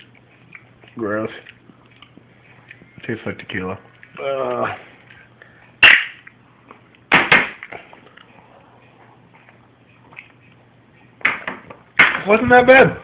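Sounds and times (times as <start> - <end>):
low steady hum: 0.0 - 13.0
sharp knocks of hard objects: 7.1 - 7.8, 11.2 - 12.4.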